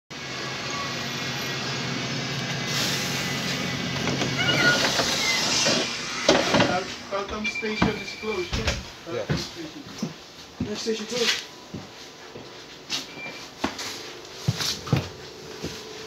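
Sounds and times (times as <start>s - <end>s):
long air hiss: 2.6s - 7.3s
footsteps and knocks: 3.9s - 10.9s, 11.7s - 16.0s.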